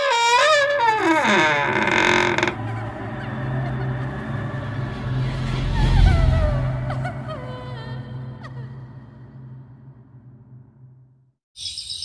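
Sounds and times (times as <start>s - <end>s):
low steady drone: 2.5s - 11.0s.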